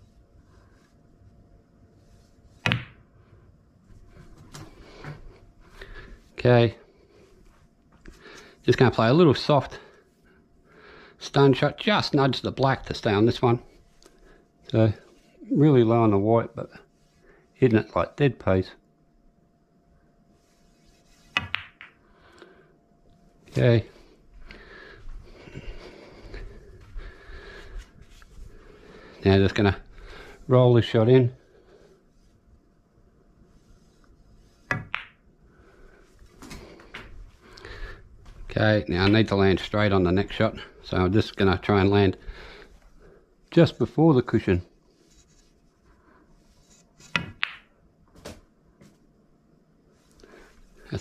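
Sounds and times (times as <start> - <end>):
faint footsteps: 23.3 - 29.2, 36.2 - 39.4.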